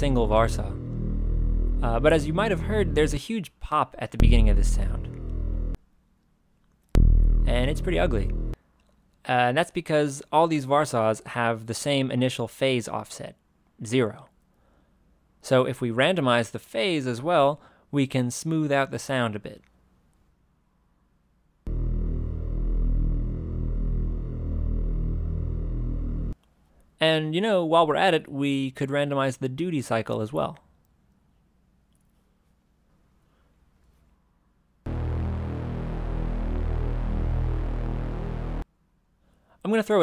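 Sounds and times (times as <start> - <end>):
low buzzy synthesizer drone: 0.0 - 3.2, 4.2 - 5.8, 7.0 - 8.6, 21.7 - 26.4, 34.9 - 38.6.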